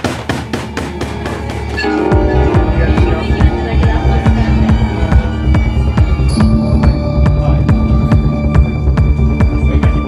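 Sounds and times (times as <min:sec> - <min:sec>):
steady kick drum: 0:00.0 - 0:10.0
electronic dance music: 0:00.8 - 0:10.0
held bass and synth tones: 0:00.9 - 0:10.0.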